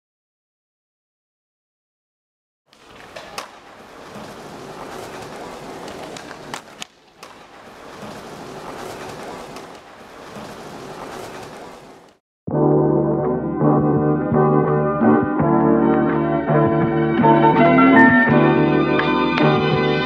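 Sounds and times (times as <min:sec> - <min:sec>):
skateboard clacks on ground: 0:02.7 - 0:11.7
skateboards rolling on stone paving: 0:02.7 - 0:12.2.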